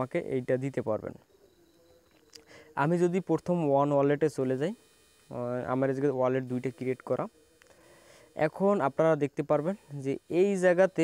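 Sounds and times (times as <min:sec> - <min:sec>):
man talking: 0:00.0 - 0:01.2, 0:02.6 - 0:07.4, 0:08.4 - 0:11.0
faint background tone: 0:00.0 - 0:11.0.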